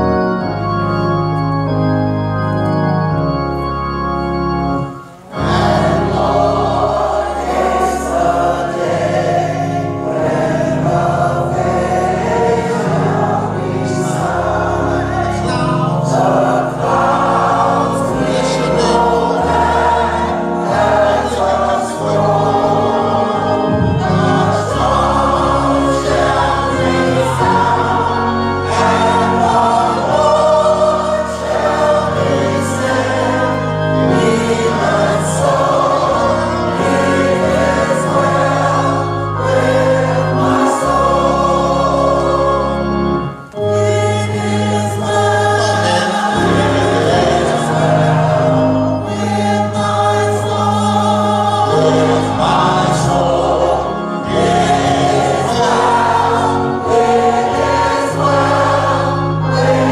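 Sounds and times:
church choir singing gospel: 0.0 - 59.9
organ with held bass notes: 0.0 - 59.9.

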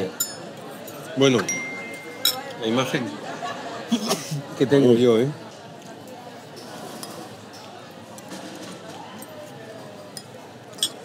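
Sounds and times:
faint background talk: 0.0 - 11.0.

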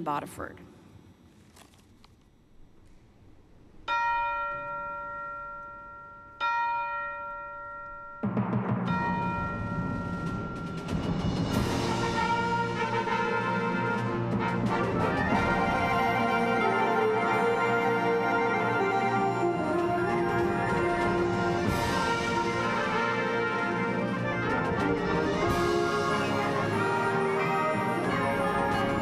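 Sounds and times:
struck bell tones: 3.9 - 8.3
concert band with brass and percussion: 9.7 - 29.0.

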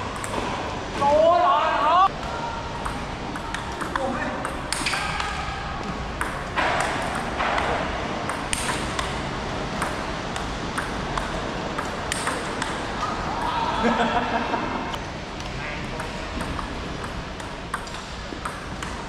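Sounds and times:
ping pong ball clicking: 0.1 - 0.4, 2.8 - 5.5, 6.2 - 9.2, 9.8 - 13.5, 15.4 - 19.0.

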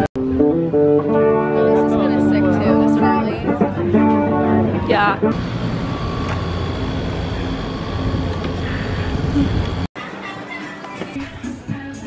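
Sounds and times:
city traffic rumble: 4.9 - 9.9.

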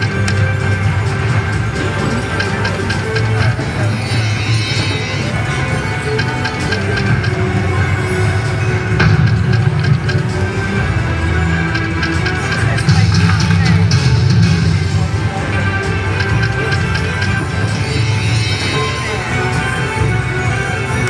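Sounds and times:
slot machine music and effects: 0.0 - 21.0.

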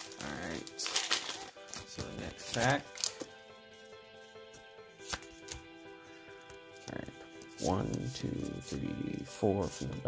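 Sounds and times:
foil wrapper crackling: 0.0 - 3.2
soft background music: 0.0 - 10.0.

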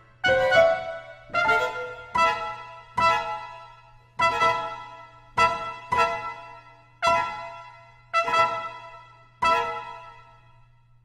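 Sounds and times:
trumpet and piano chords: 0.0 - 10.8.

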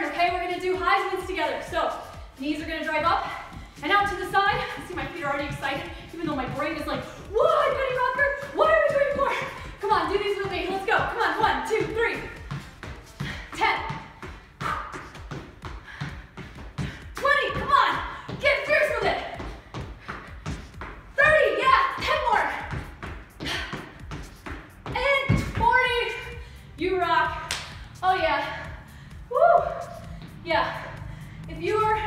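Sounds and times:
woman talking: 0.0 - 12.4, 13.5 - 14.0, 17.2 - 19.4, 21.2 - 22.7, 24.9 - 28.7, 30.4 - 32.0
feet thudding on hardwood floor: 3.6 - 26.0.

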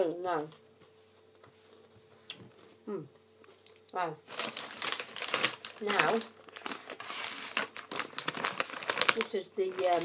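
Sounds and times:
packaging crinkling: 3.7 - 10.0.

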